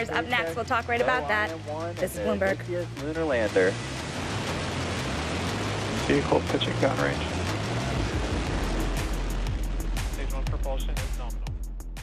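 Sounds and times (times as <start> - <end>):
low rumble: 0.0 - 12.0
rocket engines rushing roar: 3.4 - 11.0.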